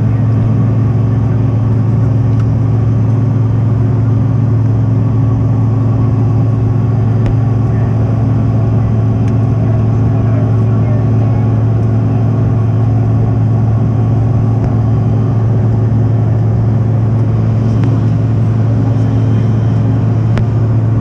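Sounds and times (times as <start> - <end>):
jet engine low hum: 0.0 - 21.0
cabin airflow rush: 5.0 - 21.0.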